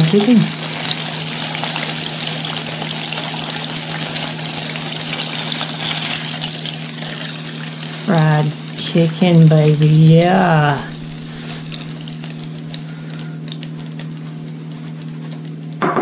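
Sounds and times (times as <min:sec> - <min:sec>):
chicken sizzling in hot oil: 0:00.0 - 0:15.8
low steady hum: 0:00.0 - 0:16.0.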